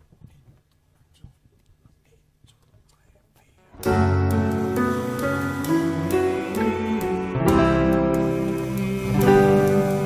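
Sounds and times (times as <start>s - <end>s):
live band playing slow song: 3.8s - 10.0s.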